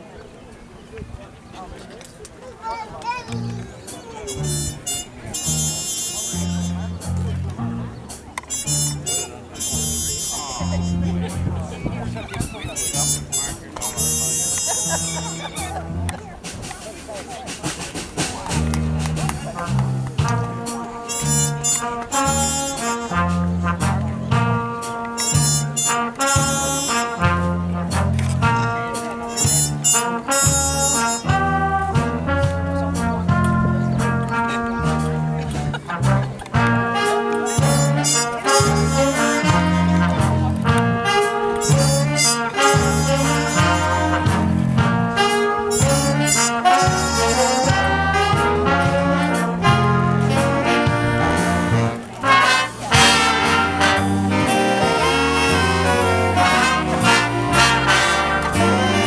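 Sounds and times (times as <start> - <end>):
people talking: 0.0 - 59.0
big band playing swing: 2.6 - 59.0
low bass notes: 3.3 - 16.9, 17.7 - 59.0
horn section low riff: 3.4 - 16.8, 17.6 - 59.0.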